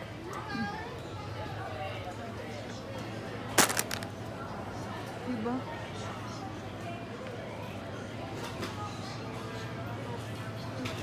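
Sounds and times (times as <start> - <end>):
bottle clattering into plastic basket: 3.6 - 4.1.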